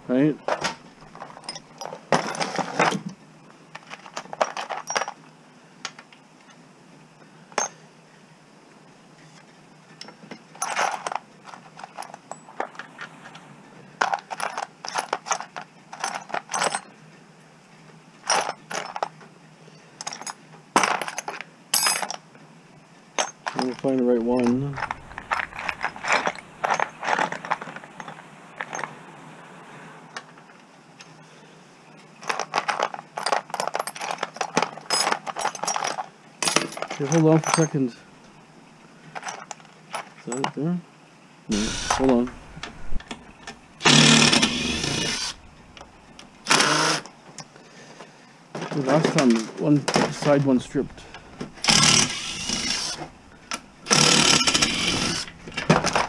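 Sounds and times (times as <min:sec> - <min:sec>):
metal bits clinking in plastic tray: 0:03.8 - 0:05.2, 0:23.2 - 0:28.9, 0:32.2 - 0:38.0, 0:48.6 - 0:56.0.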